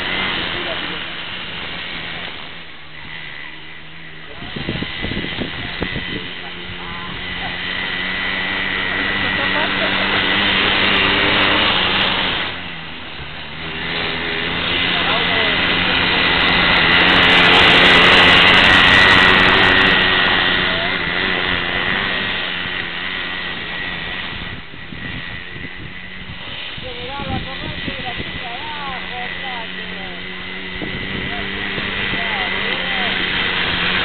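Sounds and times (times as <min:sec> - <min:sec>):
go-kart engine passing by: 0:00.0 - 0:34.0.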